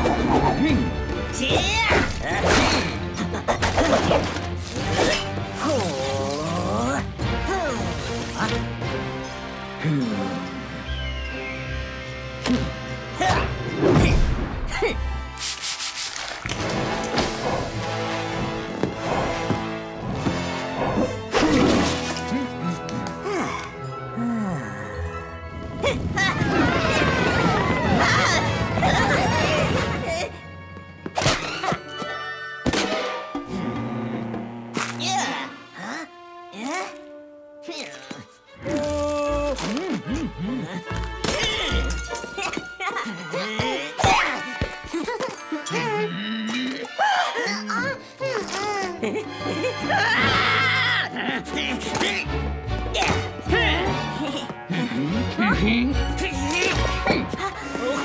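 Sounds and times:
music: 0.0 - 58.0.

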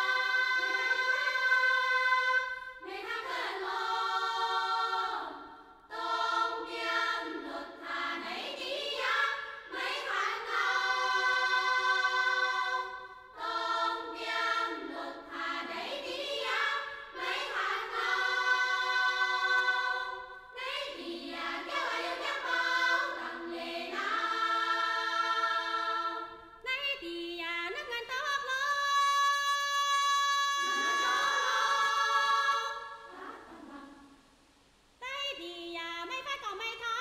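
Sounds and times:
choir singing: 0.0 - 26.6, 30.5 - 34.2
woman singing unaccompanied: 26.6 - 34.0, 35.0 - 37.0.

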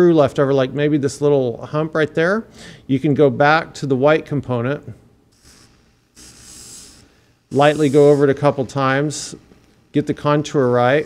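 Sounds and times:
dental bur scratchy hiss: 5.3 - 11.0.

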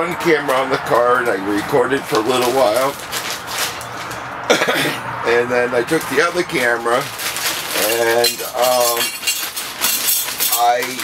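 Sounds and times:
plastic bag crackling: 1.2 - 4.3, 5.8 - 11.0
camera pieces rattling and clinking: 7.2 - 11.0.

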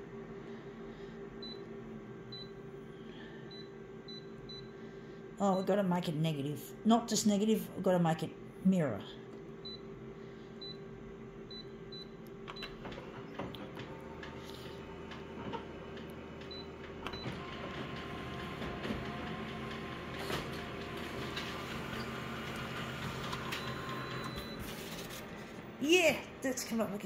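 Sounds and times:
copier motors and fans humming: 0.0 - 27.0.

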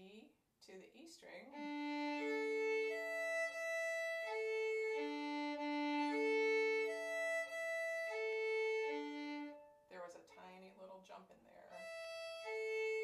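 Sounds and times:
violin bowed string crossings: 1.5 - 9.9, 11.7 - 13.0.

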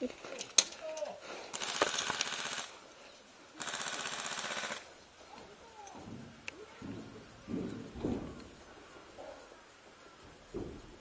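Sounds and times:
airsoft guns firing full-auto: 1.5 - 2.8, 3.6 - 4.9.

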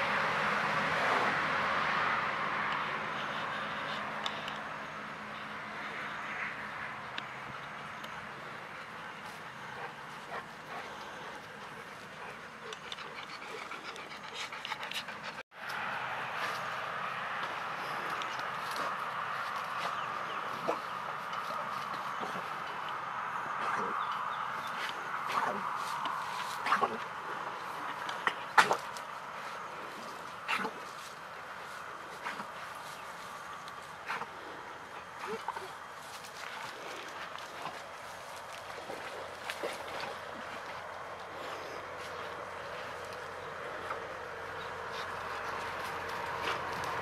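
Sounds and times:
dog panting: 8.8 - 15.4.

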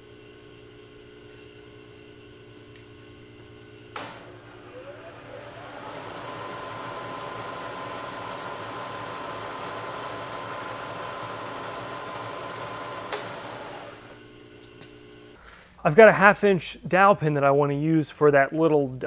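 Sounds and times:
mill spindle motor whining: 3.4 - 15.4.

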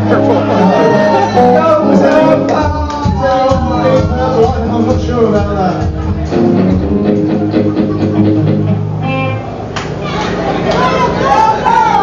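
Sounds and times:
punk rock band playing: 0.0 - 9.5.

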